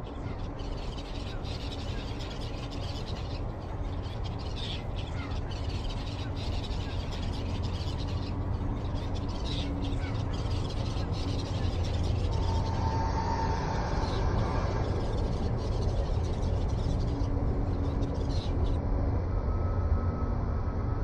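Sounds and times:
birds calling: 0:00.0 - 0:18.8
low mechanical hum: 0:00.0 - 0:21.0.

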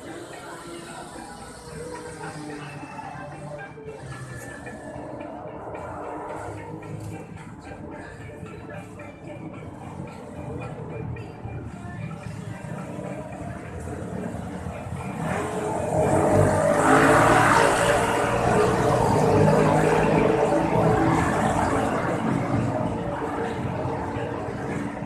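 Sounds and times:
motor vehicle passing: 0:12.5 - 0:25.0.

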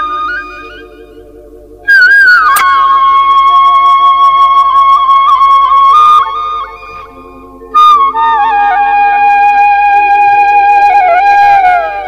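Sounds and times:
high whistle-like melody: 0:00.0 - 0:12.0
soft low sustained accompaniment: 0:00.0 - 0:12.0
sharp click: 0:02.5 - 0:02.8.

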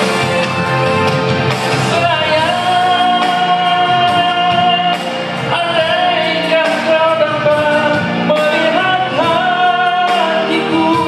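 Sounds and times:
musical accompaniment: 0:00.0 - 0:11.0
man singing into microphone: 0:01.8 - 0:11.0.

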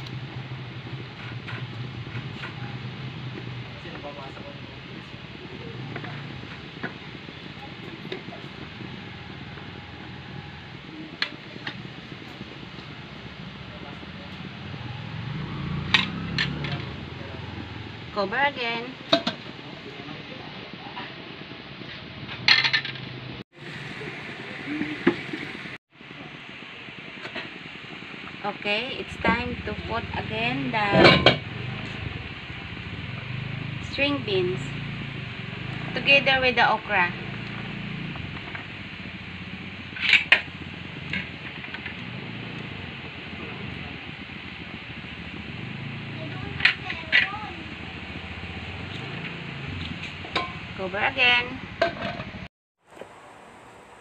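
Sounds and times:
gas burner hissing: 0:00.0 - 0:54.0
steady background hiss: 0:52.8 - 0:54.0.

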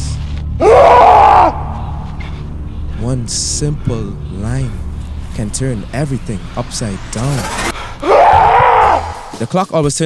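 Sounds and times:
low steady drone: 0:00.0 - 0:08.3
woman screaming: 0:08.0 - 0:09.2.

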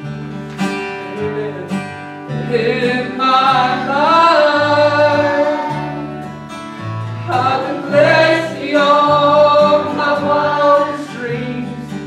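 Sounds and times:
acoustic guitar: 0:00.0 - 0:12.0
person singing: 0:01.1 - 0:06.4, 0:07.2 - 0:12.0.

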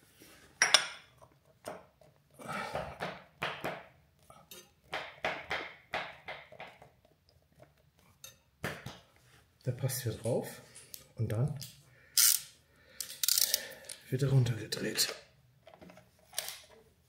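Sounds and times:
metal wrench clinking and scraping: 0:12.2 - 0:13.6.

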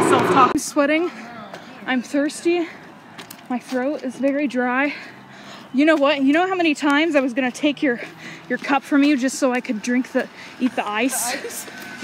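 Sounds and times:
woman talking: 0:00.0 - 0:01.2, 0:01.8 - 0:02.8, 0:03.5 - 0:11.8.

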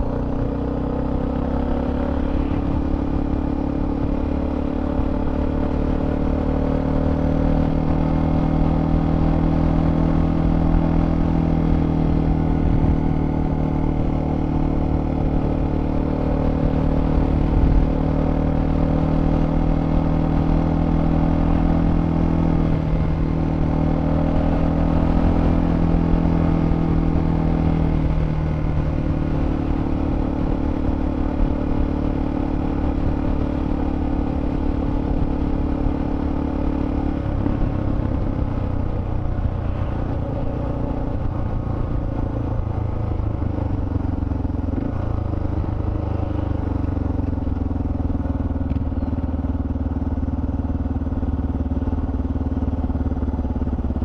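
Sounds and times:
motorcycle engine cruising: 0:00.0 - 0:54.0.

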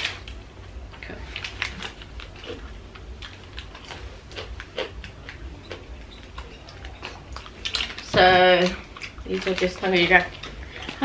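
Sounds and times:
paper wrapping handling noises: 0:00.9 - 0:04.0.

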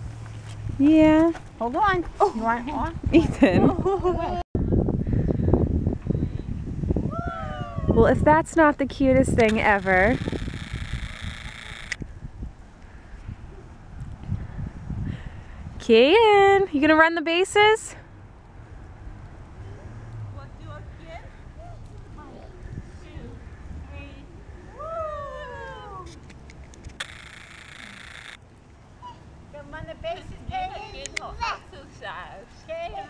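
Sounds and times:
wind buffeting microphone: 0:00.0 - 0:17.1, 0:17.7 - 0:27.5, 0:29.3 - 0:33.0
toddler calling: 0:29.0 - 0:29.3.

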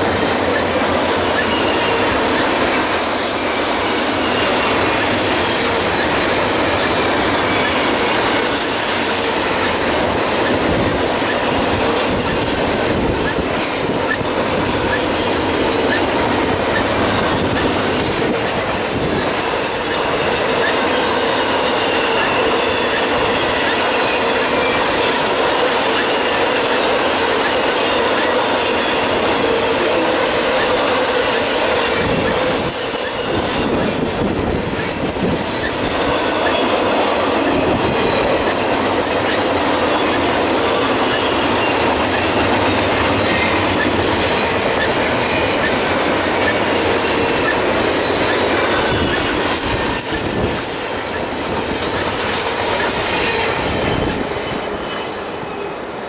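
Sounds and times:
train wheels rumbling on rails: 0:00.0 - 0:56.0
faint high wheel squeal: 0:00.5 - 0:05.2, 0:19.8 - 0:24.9, 0:29.9 - 0:34.0, 0:44.8 - 0:51.2.

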